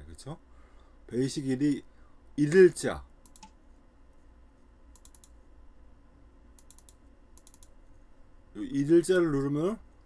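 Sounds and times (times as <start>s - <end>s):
computer mouse clicks: 3.2s - 3.6s, 4.9s - 5.4s, 6.5s - 7.8s.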